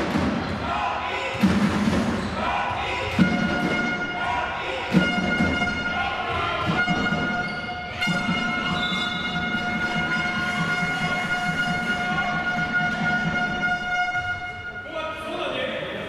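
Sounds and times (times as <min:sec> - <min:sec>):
sports hall rumble: 0:00.0 - 0:16.0.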